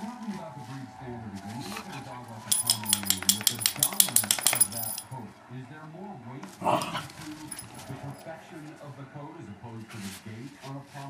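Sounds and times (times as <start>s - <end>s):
faint tv speech: 0.0s - 11.0s
dog tags jingling: 2.5s - 5.2s, 6.7s - 8.2s.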